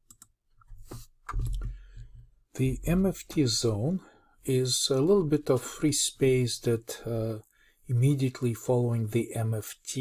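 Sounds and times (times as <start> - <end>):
computer mouse clicks: 0.0 - 0.3.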